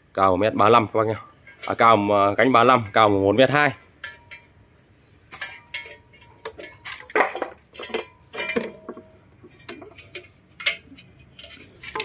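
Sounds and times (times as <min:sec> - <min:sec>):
metal fan pole clinks and knocks: 0:04.0 - 0:04.6, 0:05.3 - 0:12.0.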